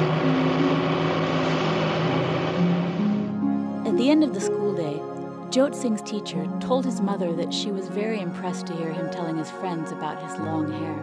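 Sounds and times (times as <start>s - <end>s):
rushing noise: 0.0s - 3.4s
soft background music: 0.0s - 11.0s.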